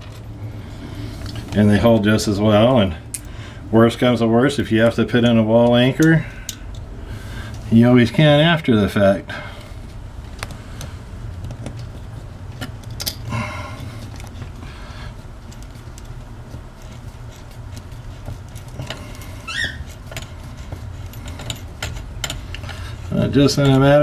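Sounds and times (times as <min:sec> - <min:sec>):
steady low hum: 0:00.0 - 0:24.0
metallic clinking and scraping: 0:10.3 - 0:24.0
short rising squeak: 0:19.3 - 0:20.0.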